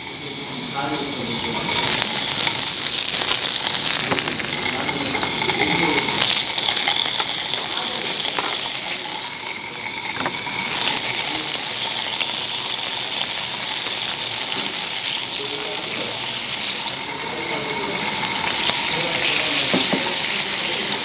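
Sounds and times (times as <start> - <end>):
meat sizzling in hot oil: 0.0 - 21.0.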